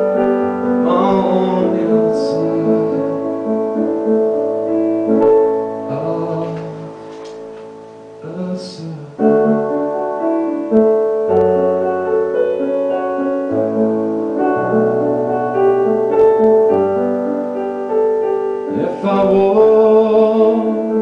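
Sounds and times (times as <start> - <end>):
piano chords and melody: 0.0 - 21.0.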